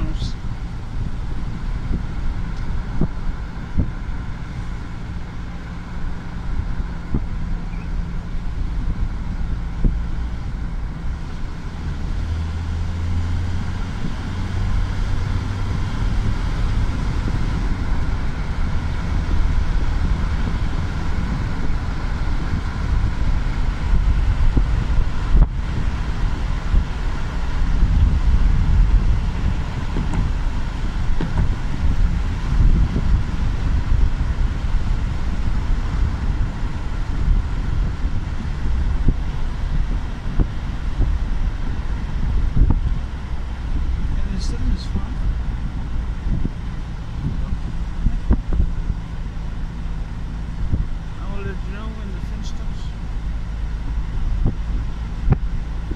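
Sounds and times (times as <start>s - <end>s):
wind buffeting microphone: 0.0s - 52.0s, 52.6s - 55.9s
car engine and road rumble: 0.0s - 55.9s.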